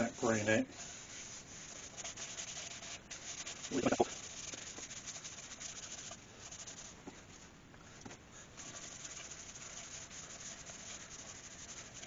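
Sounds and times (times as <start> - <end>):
cloth pad rubbing wood: 0.0 - 7.0, 8.6 - 12.0.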